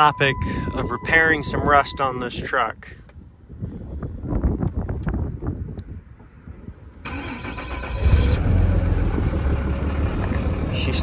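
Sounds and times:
diesel engine cranking and running: 0:07.0 - 0:11.0.

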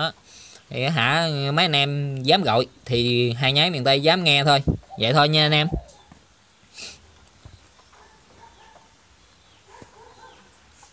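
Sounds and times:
faint animal calls: 0:04.7 - 0:06.2.

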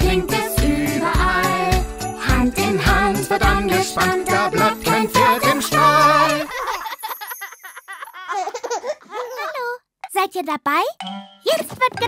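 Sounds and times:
cartoon children laughing: 0:05.2 - 0:09.8.

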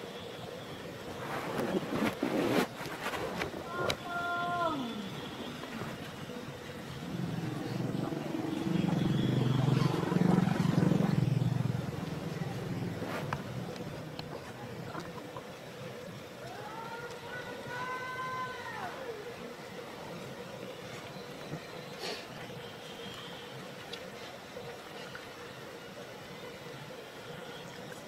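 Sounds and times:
low engine drone: 0:04.7 - 0:16.4.

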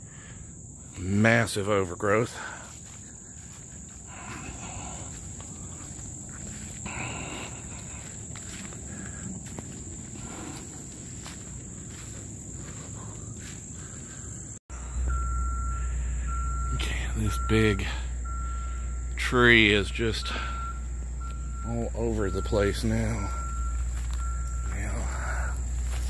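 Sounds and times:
insects shrilling: 0:00.0 - 0:26.0
low engine rumble: 0:02.1 - 0:26.0
vehicle reversing beeps: 0:02.4 - 0:26.0
rustle of leaves and brush: 0:02.5 - 0:14.1, 0:20.4 - 0:26.0.

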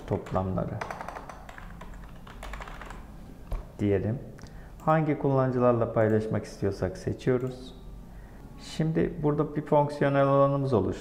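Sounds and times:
computer keyboard typing: 0:00.0 - 0:03.1.

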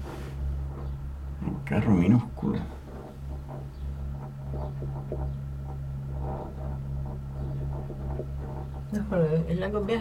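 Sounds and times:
cable car cabin humming: 0:00.0 - 0:10.0.

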